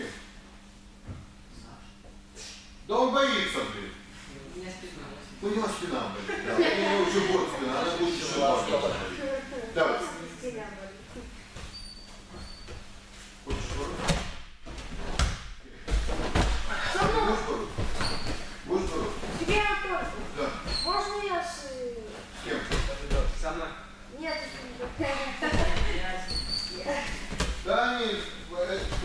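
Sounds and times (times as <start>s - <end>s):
body hitting gym mat: 12.8s - 20.9s, 22.5s - 23.6s, 24.8s - 27.8s, 28.5s - 29.0s.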